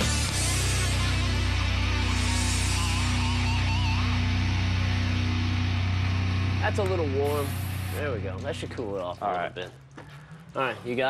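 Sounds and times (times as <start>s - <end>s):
rock music with electric guitar: 0.0s - 8.3s.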